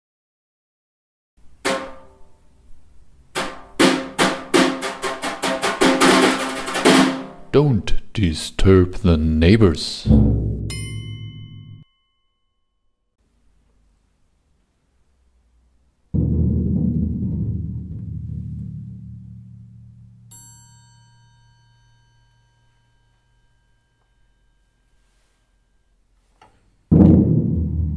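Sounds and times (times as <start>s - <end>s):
snare drum hits and roll: 3.4s - 7.4s, 26.9s - 27.9s
large drum boom: 10.0s - 11.0s, 16.1s - 20.2s, 26.9s - 27.9s.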